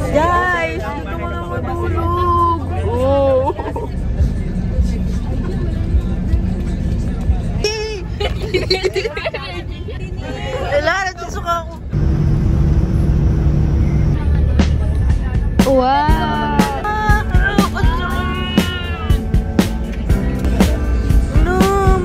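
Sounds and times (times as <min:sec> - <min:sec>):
bus cabin rumble: 0:00.0 - 0:22.0
passengers chattering and calling out: 0:00.0 - 0:22.0
steady hum with low held tones: 0:11.9 - 0:14.2.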